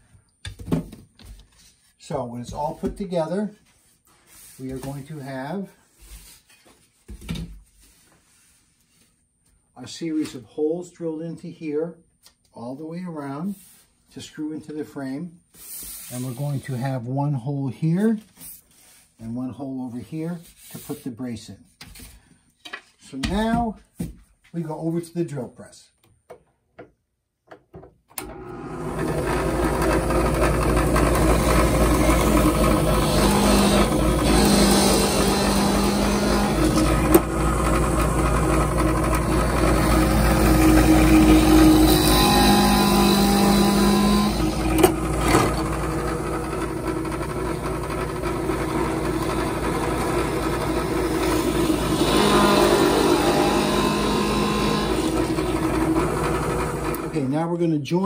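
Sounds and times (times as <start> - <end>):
drill press running: 28.2 - 57.2.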